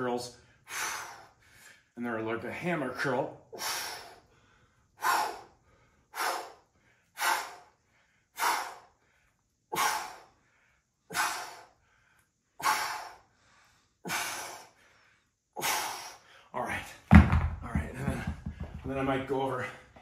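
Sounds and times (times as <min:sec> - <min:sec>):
man exhaling forcefully: 0:05.0 - 0:05.5, 0:06.1 - 0:06.6, 0:07.2 - 0:07.7, 0:08.4 - 0:08.9, 0:09.8 - 0:10.3, 0:11.1 - 0:11.7, 0:12.6 - 0:13.2, 0:14.1 - 0:14.8.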